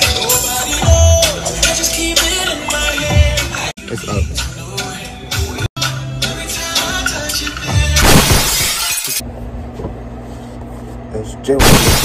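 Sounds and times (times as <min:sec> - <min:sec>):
glass breaking crash: 0:08.0 - 0:09.2, 0:11.6 - 0:12.0.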